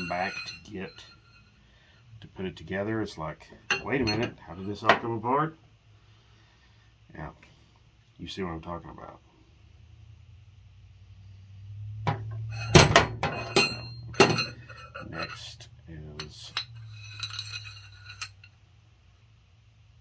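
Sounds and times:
metal parts clinking on workbench: 0.0s - 1.5s, 3.7s - 5.0s, 12.5s - 15.6s, 16.2s - 18.5s
steady low hum: 0.0s - 20.0s.

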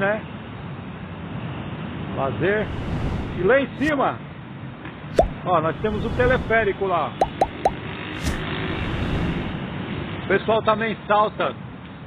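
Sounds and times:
wind buffeting microphone: 5.1s - 9.9s.

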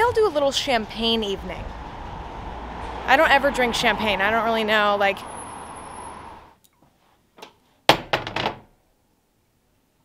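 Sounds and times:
faint street noise: 0.0s - 7.9s.

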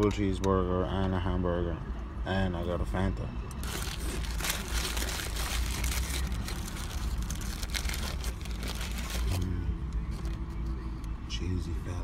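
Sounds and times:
paper wrapper crinkling: 3.6s - 10.4s.

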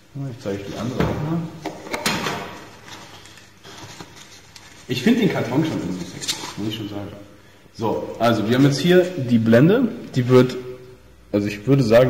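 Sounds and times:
wrapping paper rustling: 2.6s - 6.9s.

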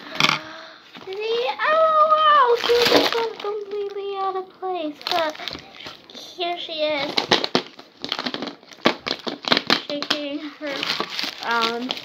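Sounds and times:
plastic packaging crinkling: 1.0s - 12.0s.

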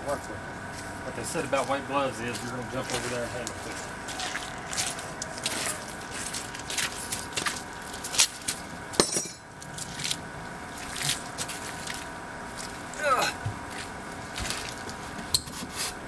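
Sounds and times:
footsteps: 0.7s - 8.7s, 13.4s - 15.9s
knocks and scrapes of handling materials: 14.4s - 16.0s.

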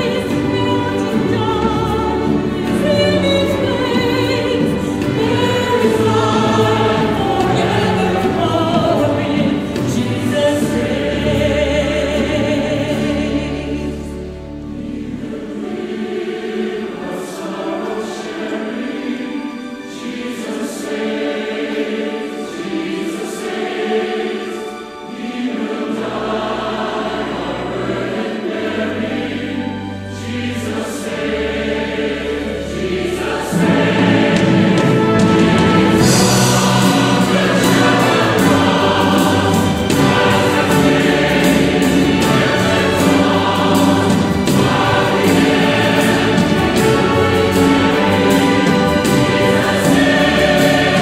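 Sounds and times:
choir singing a hymn: 0.0s - 51.0s
orchestra playing: 0.0s - 51.0s.

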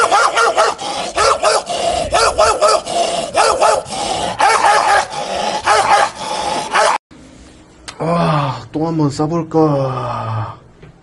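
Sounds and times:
man imitating dog barking: 0.0s - 7.0s.

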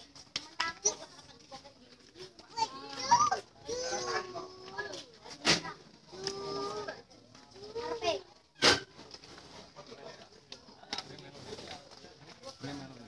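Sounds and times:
crowd calling and talking: 0.0s - 13.0s.

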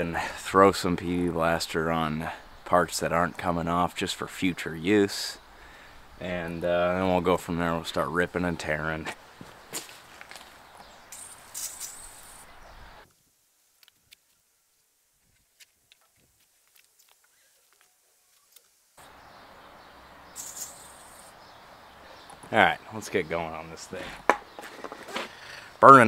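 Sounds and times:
aerosol spray hissing: 11.2s - 12.5s.

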